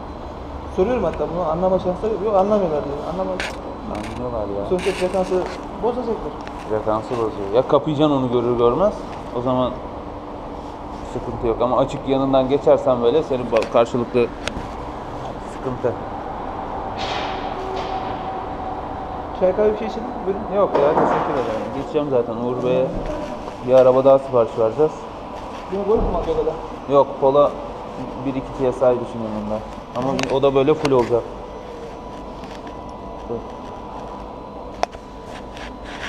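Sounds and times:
faint steady whine: 0:00.0 - 0:36.0
machine hum: 0:00.0 - 0:36.0.

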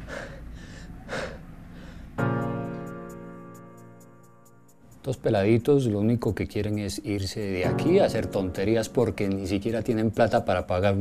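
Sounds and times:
person breathing: 0:00.0 - 0:02.2.

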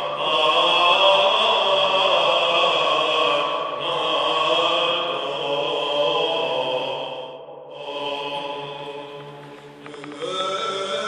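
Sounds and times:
low sung drone: 0:00.0 - 0:11.0
male voices chanting melody: 0:00.0 - 0:11.0.

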